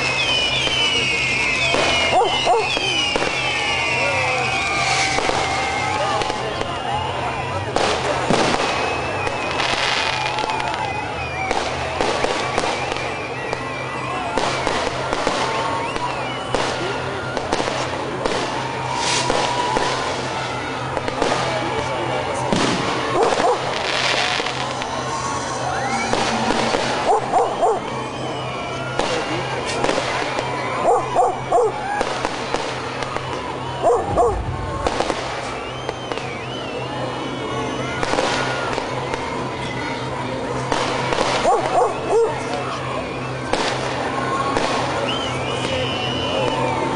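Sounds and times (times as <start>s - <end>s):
crowd shouting: 0.0s - 46.9s
fireworks bangs and crackles: 0.0s - 46.9s.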